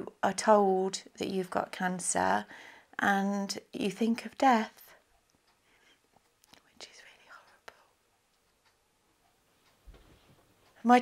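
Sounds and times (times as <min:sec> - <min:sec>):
faint clicks: 0:04.7 - 0:10.8.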